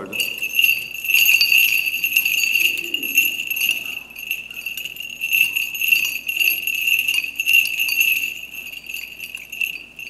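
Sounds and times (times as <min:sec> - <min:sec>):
small bells jingling: 0:00.0 - 0:10.0.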